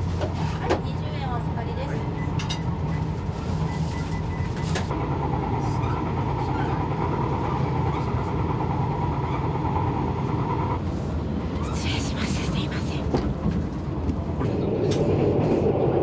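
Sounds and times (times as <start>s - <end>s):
train low rumble: 0.0s - 16.0s.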